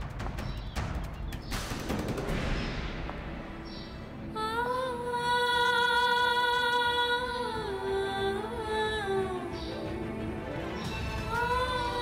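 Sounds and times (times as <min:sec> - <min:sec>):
sharp percussive hits: 0:00.0 - 0:04.0.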